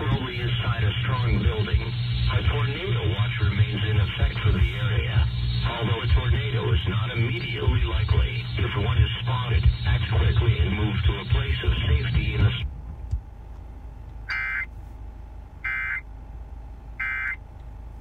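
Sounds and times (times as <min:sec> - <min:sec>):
car radio music: 0:00.0 - 0:18.0
electronic data burst tones: 0:14.3 - 0:14.7, 0:15.6 - 0:16.0, 0:17.0 - 0:17.4.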